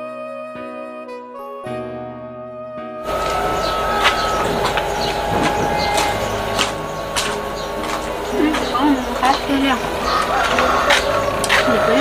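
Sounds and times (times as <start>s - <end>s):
outdoor background noise: 3.0s - 12.0s
footsteps on gravel: 3.1s - 12.0s.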